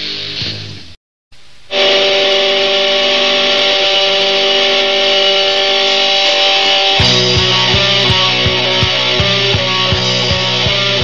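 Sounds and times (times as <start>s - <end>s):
distorted electric guitar chord: 1.7s - 11.0s
punk rock music: 1.7s - 11.0s.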